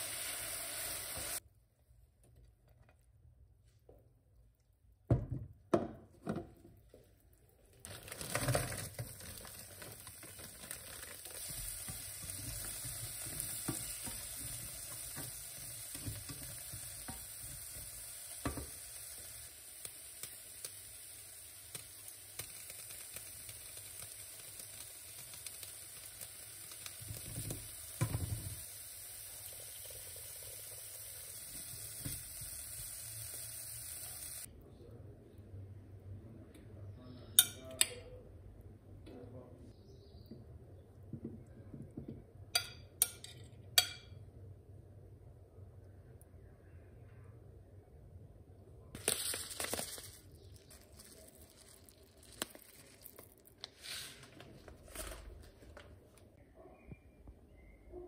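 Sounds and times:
vegetables sizzling in a frying pan: 0.0s - 1.4s, 7.9s - 34.5s.

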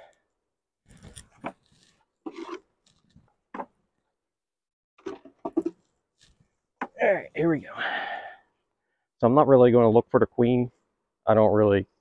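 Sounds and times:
wooden frames creaking and knocking: 5.0s - 7.0s.

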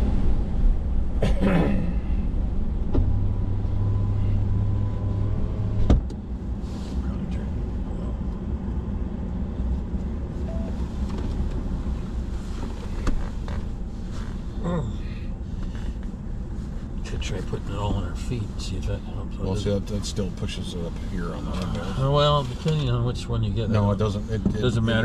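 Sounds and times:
car engine and road noise: 0.0s - 25.0s.

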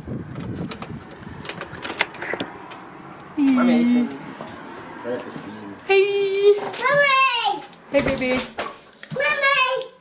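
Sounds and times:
door handling rumble: 0.0s - 2.8s.

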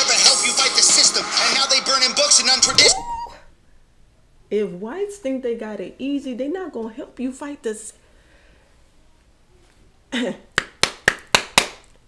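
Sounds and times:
sharp hand claps: 10.6s - 12.0s.

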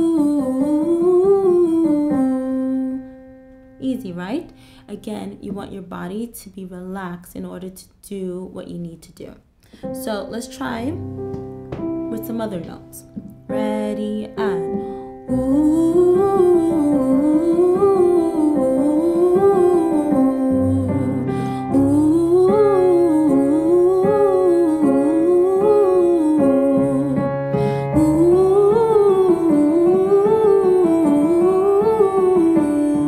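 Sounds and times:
woman singing vocal scales: 0.0s - 3.2s, 12.1s - 33.0s
sustained keyboard chords: 9.8s - 33.0s.

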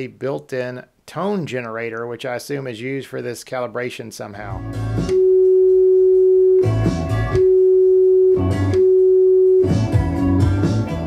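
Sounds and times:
steady pure test tone beep: 5.1s - 10.0s.

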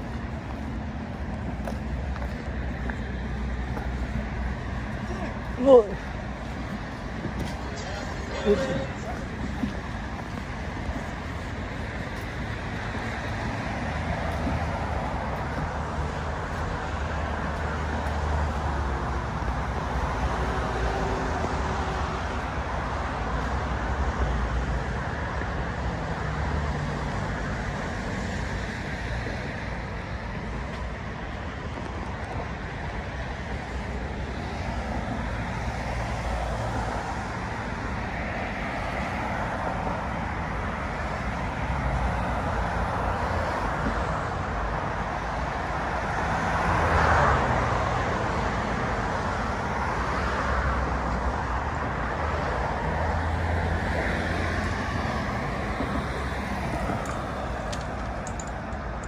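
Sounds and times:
cars passing: 0.0s - 59.0s.

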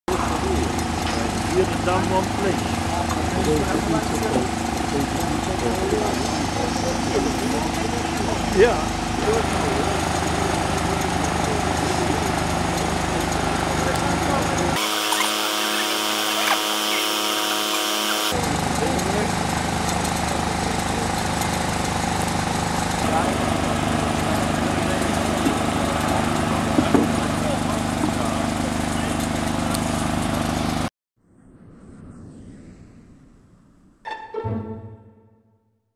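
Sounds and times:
construction machinery engines droning: 0.1s - 30.9s
workers talking: 0.1s - 30.9s.

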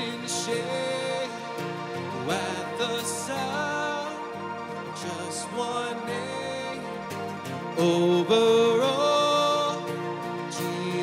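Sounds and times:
acoustic guitar: 0.0s - 11.0s
man singing: 0.0s - 11.0s.

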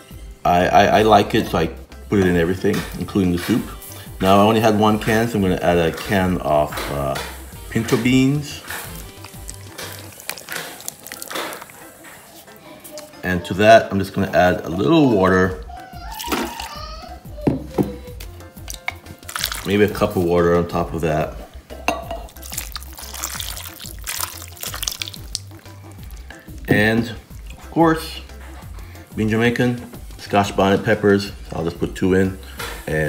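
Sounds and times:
background music: 0.0s - 33.0s
water pouring and splashing: 5.9s - 12.6s, 16.1s - 16.8s, 18.6s - 20.4s, 22.3s - 27.7s
wet slides of beans: 6.9s - 13.1s, 18.6s - 20.1s, 22.4s - 26.6s.

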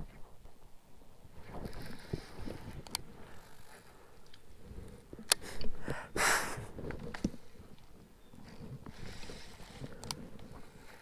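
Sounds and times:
fishing reel and rod handling: 1.6s - 5.8s, 8.8s - 11.0s.

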